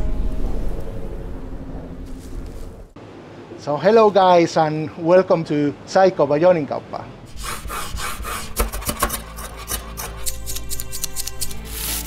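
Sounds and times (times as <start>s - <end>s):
background music with held chords: 9.0s - 12.0s.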